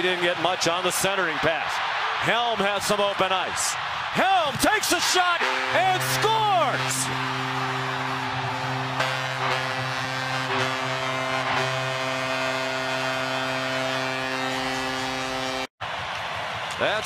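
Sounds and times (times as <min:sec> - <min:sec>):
crowd cheering: 0:00.0 - 0:17.0
arena goal horn: 0:05.2 - 0:15.7
goal music: 0:05.4 - 0:15.2.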